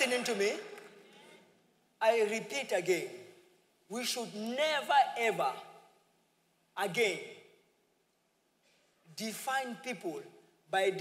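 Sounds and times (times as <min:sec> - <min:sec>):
man speaking: 0:00.0 - 0:00.8, 0:02.0 - 0:05.8, 0:06.8 - 0:07.5, 0:09.1 - 0:11.0.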